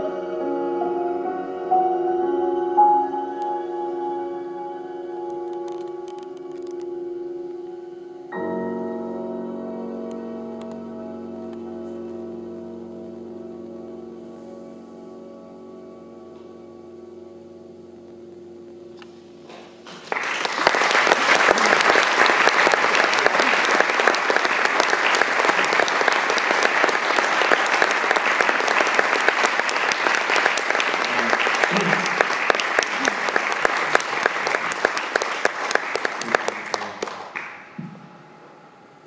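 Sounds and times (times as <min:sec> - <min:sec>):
piano piece: 0:00.0 - 0:39.0
audience applauding: 0:19.9 - 0:37.8.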